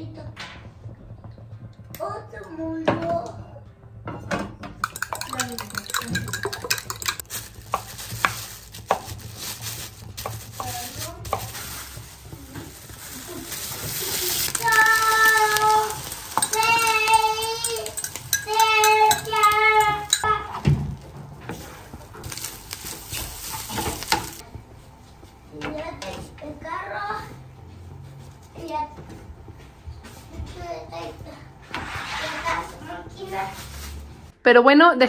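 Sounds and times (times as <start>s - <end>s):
fork beating eggs in glass jug: 4.8s - 9.4s, 10.2s - 20.4s
stirring in pan: 4.8s - 25.4s
eggs sizzling in frying pan: 4.8s - 25.5s.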